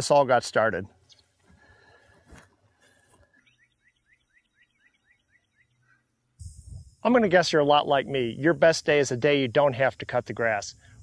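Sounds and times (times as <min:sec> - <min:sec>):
low rumble with hiss: 0:06.2 - 0:11.0.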